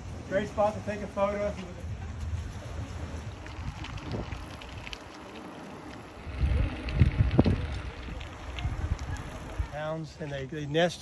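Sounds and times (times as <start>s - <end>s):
wind buffeting microphone: 1.2s - 9.8s.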